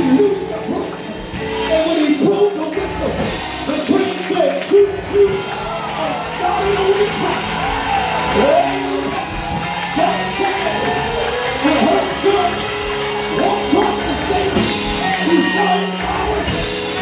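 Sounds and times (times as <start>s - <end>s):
gospel music chords: 0.0s - 17.0s.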